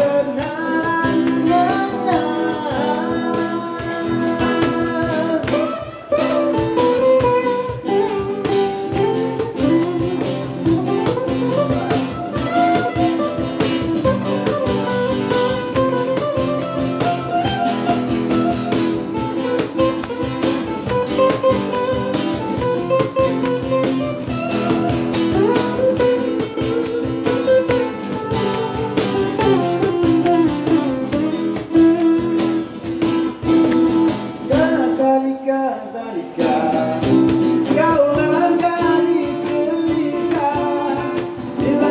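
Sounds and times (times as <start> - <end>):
person singing: 0.0 - 18.1, 19.3 - 41.9
acoustic guitar strummed and picked: 0.0 - 41.9.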